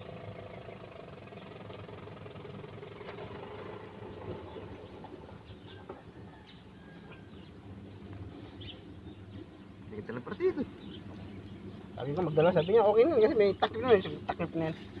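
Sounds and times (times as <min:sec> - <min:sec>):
faint engine hum: 0:00.0 - 0:15.0.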